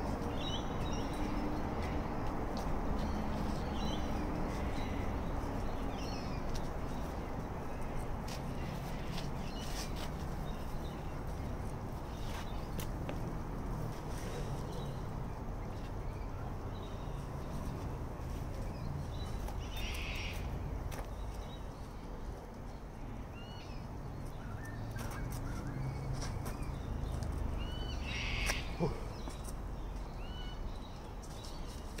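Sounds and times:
birds chirping: 0.0 - 13.3, 14.1 - 32.0
harsh bird calls: 18.7 - 21.7, 23.4 - 31.8.

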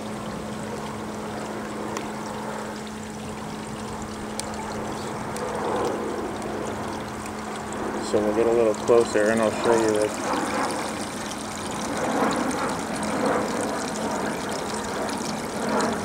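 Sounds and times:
low steady hum: 0.0 - 16.0
running water: 0.0 - 16.0.

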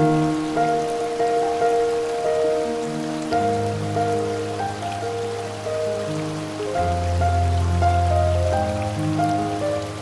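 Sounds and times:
slow calm piano music: 0.0 - 10.0
waterfall hiss: 0.0 - 10.0.

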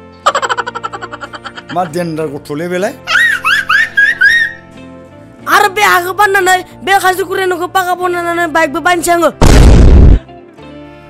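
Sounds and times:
explosion-like blast: 9.4 - 10.2.

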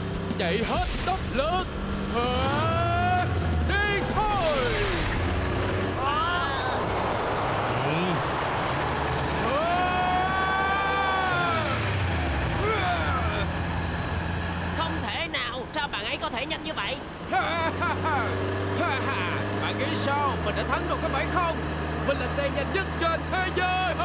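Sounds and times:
cartoon sports car engine revving: 0.0 - 14.9, 17.4 - 24.0
rushing road noise: 0.0 - 24.0.

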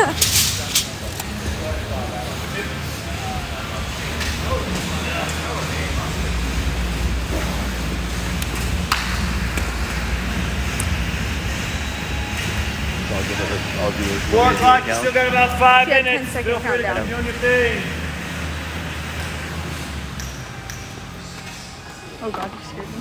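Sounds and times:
faint voices: 0.0 - 8.4
room noise rumble: 0.0 - 22.3.

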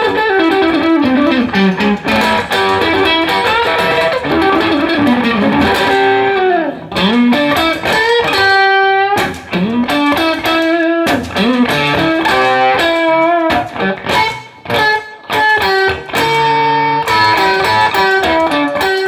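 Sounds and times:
electric guitar blues lead: 0.0 - 19.0.

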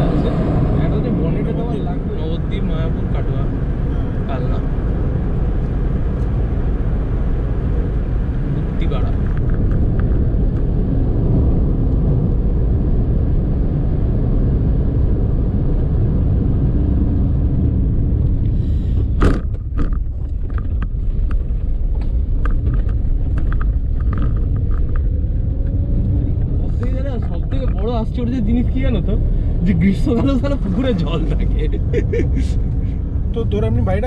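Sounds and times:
road and engine rumble in car: 0.0 - 34.0.

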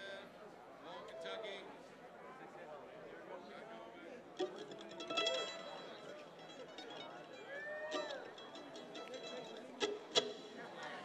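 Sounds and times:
audience chatter: 0.0 - 11.0
bright strum: 4.4 - 11.0
plucked string notes: 4.4 - 11.0.

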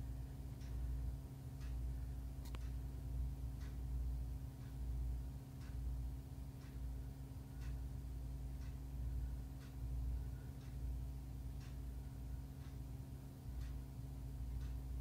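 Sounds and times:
steady low hum: 0.0 - 15.0
faint ticks: 2.4 - 2.9.

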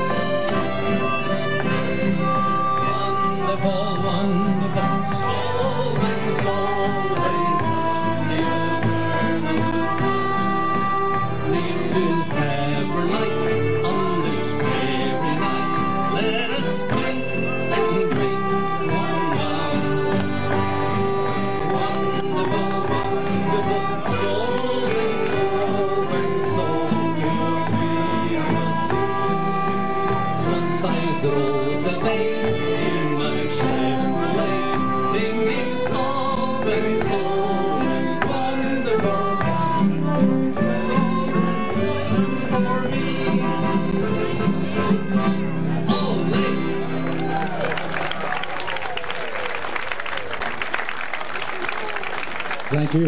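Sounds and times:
piano accordion playing: 0.0 - 48.2.

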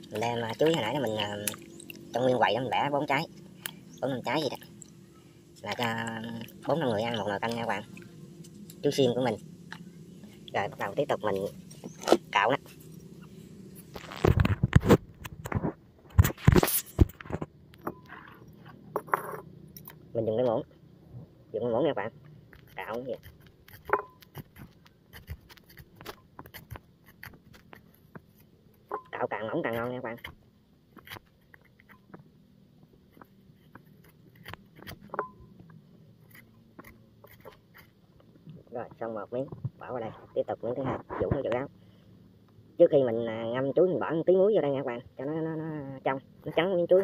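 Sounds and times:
spoon scraping banana: 0.0 - 5.0, 5.6 - 14.3, 36.2 - 38.0.

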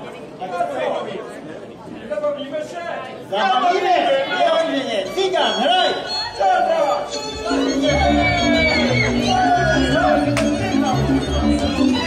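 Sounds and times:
several people talking at once: 0.0 - 12.0.

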